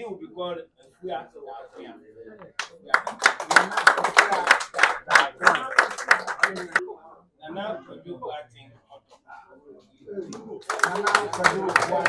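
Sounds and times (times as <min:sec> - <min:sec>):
voices: 0:00.6 - 0:12.0
people clapping hands: 0:02.5 - 0:06.8, 0:10.3 - 0:12.0.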